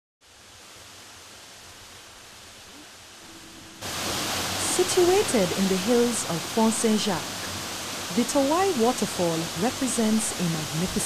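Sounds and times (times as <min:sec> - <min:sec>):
waterfall rushing: 0:00.3 - 0:11.0.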